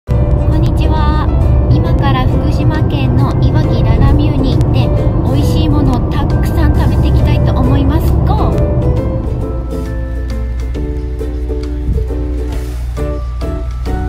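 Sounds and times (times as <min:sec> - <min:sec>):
car cabin rumble: 0:00.1 - 0:10.0
background music: 0:00.1 - 0:14.0
woman talking: 0:00.4 - 0:08.7.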